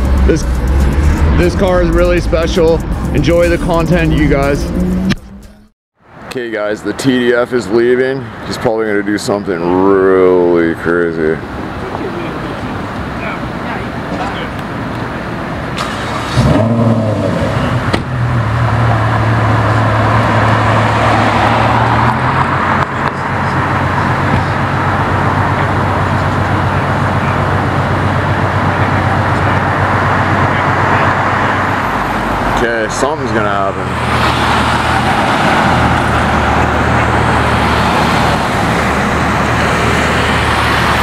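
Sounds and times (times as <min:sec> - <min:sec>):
car engine idling: 0:20.7 - 0:41.0.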